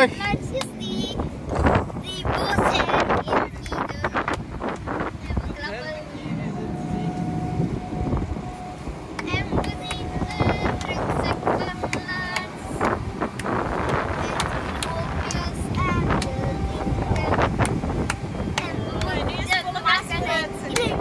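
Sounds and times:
ferry engine rumbling: 0:00.0 - 0:21.0
voices chatting: 0:00.0 - 0:21.0
wind on microphone: 0:00.0 - 0:21.0.

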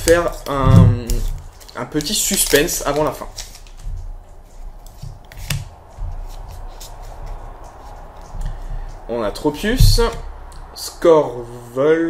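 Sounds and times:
cards rustling and sliding: 0:00.0 - 0:09.1.

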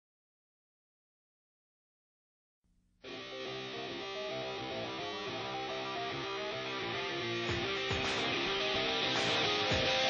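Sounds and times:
guitar playing picked riff: 0:03.0 - 0:10.0.

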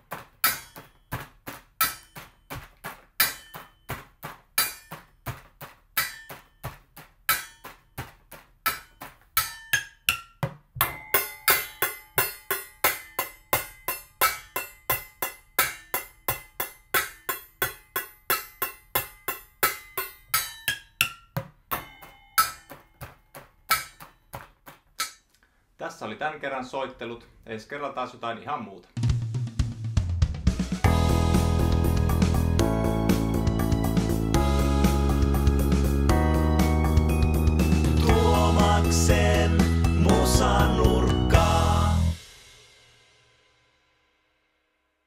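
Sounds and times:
pots and pans drumming: 0:00.0 - 0:25.2
metal jar lid ringing: 0:08.7 - 0:23.0.

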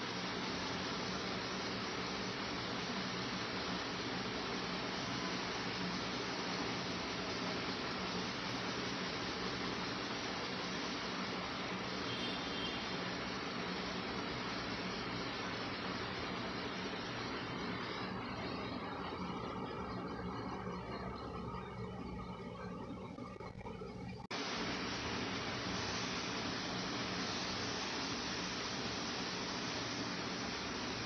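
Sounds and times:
steady background hiss: 0:00.0 - 0:31.0.

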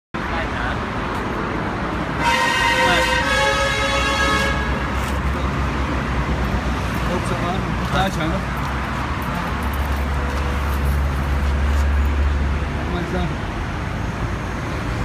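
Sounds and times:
held horn-like tone: 0:02.2 - 0:05.0.

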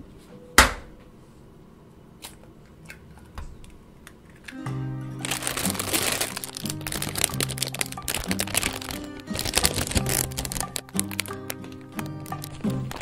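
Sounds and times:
background music: 0:04.5 - 0:13.0
plastic bag crinkling: 0:05.2 - 0:13.0.

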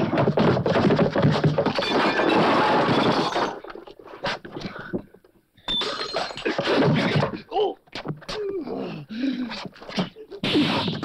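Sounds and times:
punches and crashing: 0:10.4 - 0:11.0.

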